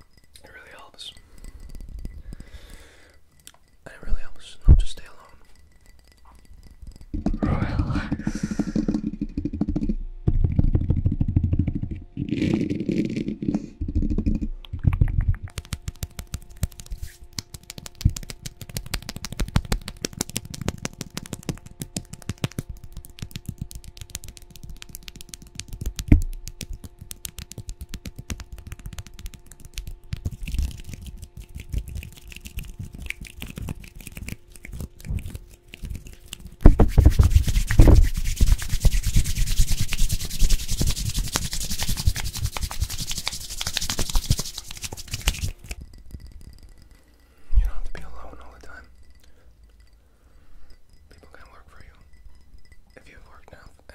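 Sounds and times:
fingertip taps and scratches: 13.9s - 46.9s
hands rubbing on microphone: 15.2s - 45.8s.

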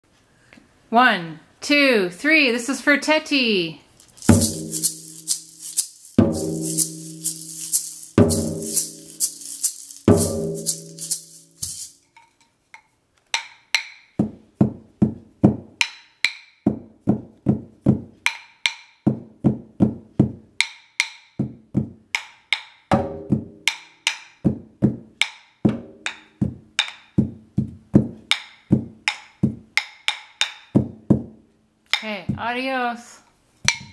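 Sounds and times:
gourd maraca rattle: 3.8s - 12.4s
rhythm sticks clicking: 4.0s - 12.0s
frame drum struck with mallet: 4.2s - 11.9s, 22.9s - 25.0s.

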